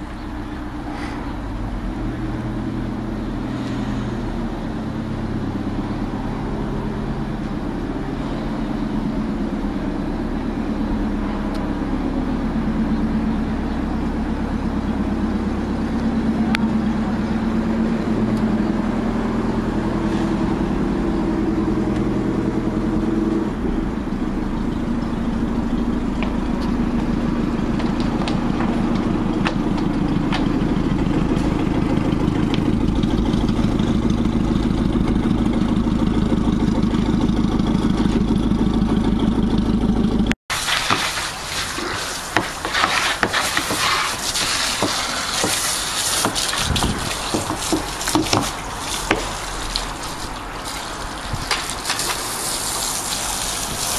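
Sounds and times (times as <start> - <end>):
boat engine idling: 0.0 - 53.9.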